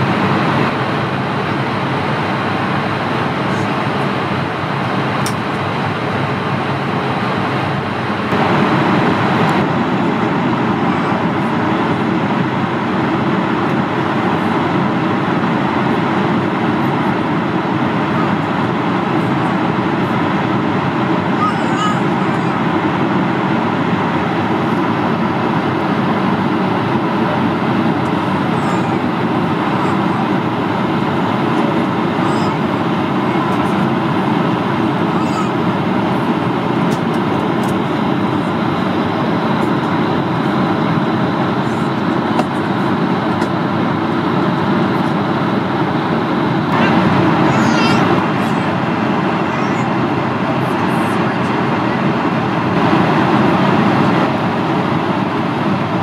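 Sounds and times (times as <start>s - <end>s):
airflow rushing over fuselage: 0.0s - 56.0s
jet engines humming: 0.0s - 56.0s.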